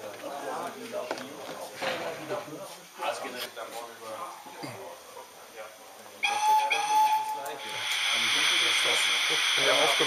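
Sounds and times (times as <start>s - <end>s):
model steam locomotive whistle: 6.2s - 10.0s
steam hiss: 6.3s - 10.0s.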